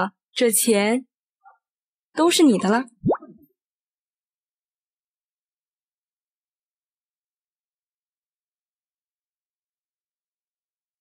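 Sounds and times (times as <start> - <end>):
rising plop sound effect: 3.0 - 3.5.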